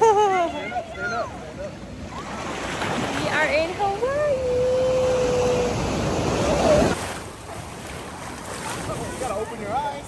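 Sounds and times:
ocean surf washing: 0:00.0 - 0:10.0.

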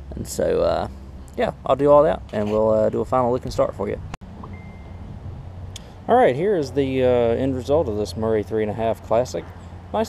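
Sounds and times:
thin high tone: 0:04.4 - 0:05.2.

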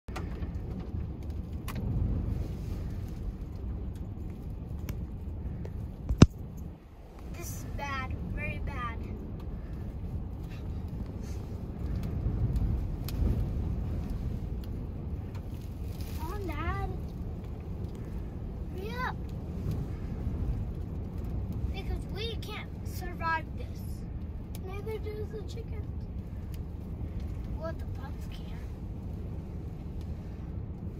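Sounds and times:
low rumble inside vehicle: 0:00.1 - 0:30.9
strong wind: 0:00.1 - 0:30.9.

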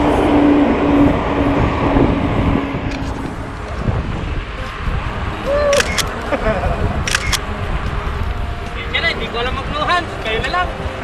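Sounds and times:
bicycle road rumble: 0:00.0 - 0:11.0
wind on microphone: 0:00.0 - 0:11.0
sharp clicks: 0:05.7 - 0:06.3, 0:07.0 - 0:07.4.

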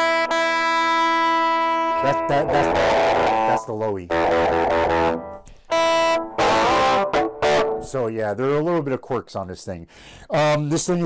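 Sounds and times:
electric guitar string plucked: 0:00.0 - 0:08.0.

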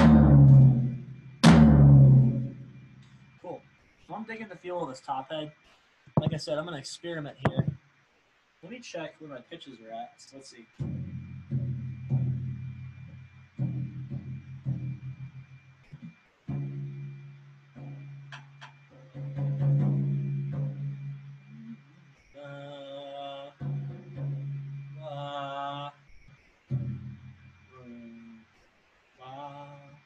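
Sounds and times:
drumstick tapping floor tom: 0:00.0 - 0:02.6, 0:06.2 - 0:06.5, 0:07.4 - 0:07.8
held higher tones: 0:06.2 - 0:06.5.

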